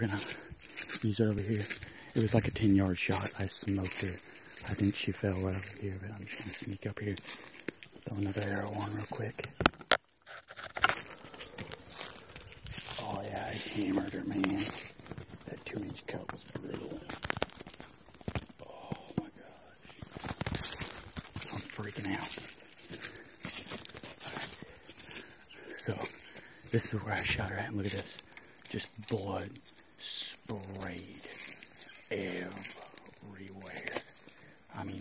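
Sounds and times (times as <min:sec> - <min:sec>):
footsteps crunching dry leaves: 0:00.0 - 0:35.0.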